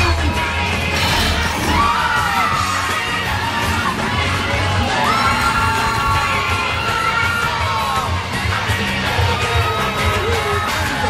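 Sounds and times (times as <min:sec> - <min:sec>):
loud rock music: 0:00.0 - 0:11.0
crowd screaming and yelling: 0:00.2 - 0:11.0.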